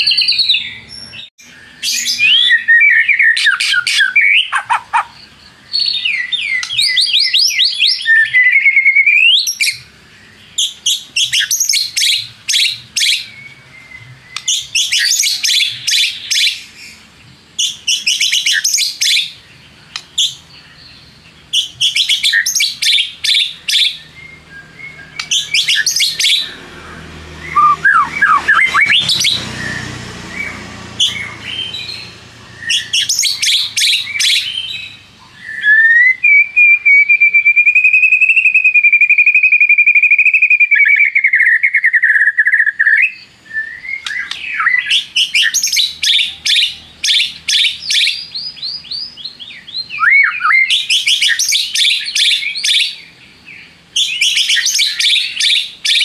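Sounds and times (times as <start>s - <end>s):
bird singing whistled notes: 0.0s - 56.0s.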